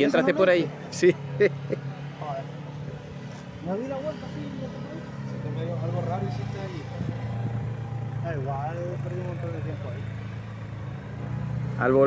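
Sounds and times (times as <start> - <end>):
voices talking: 0.0 - 12.0.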